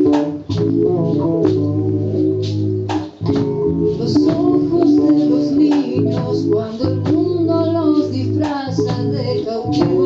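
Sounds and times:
bass guitar: 0.0s - 10.0s
woman singing: 3.9s - 10.0s.

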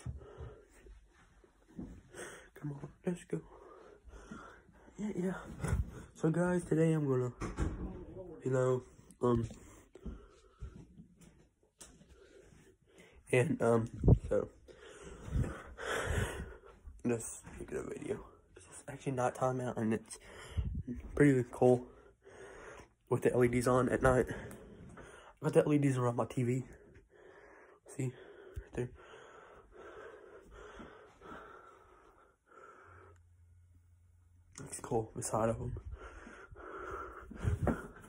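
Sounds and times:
faint breathing: 0.0s - 2.7s, 3.3s - 6.2s, 14.0s - 17.0s, 20.1s - 20.9s, 21.8s - 23.1s, 24.3s - 25.4s, 26.6s - 34.0s, 35.7s - 38.0s.

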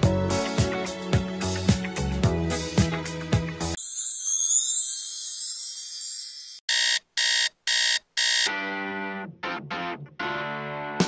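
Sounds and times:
music: 0.0s - 3.8s, 8.5s - 11.0s
high shimmering sparkle effect: 3.8s - 6.6s
digital alarm clock beeping: 3.8s - 8.5s.

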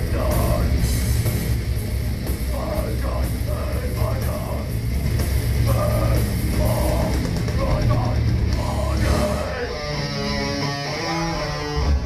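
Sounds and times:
cymbal wash: 0.0s - 11.7s
death metal band playing: 0.0s - 12.0s.

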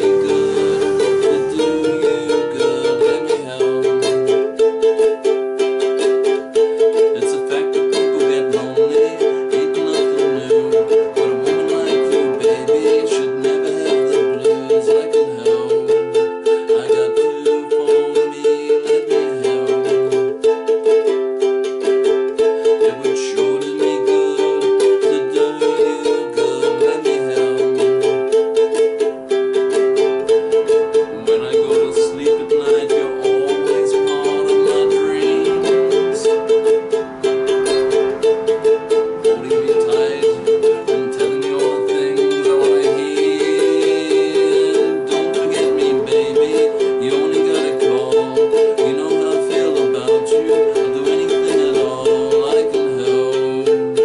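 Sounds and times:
ukulele strumming: 0.0s - 54.0s.

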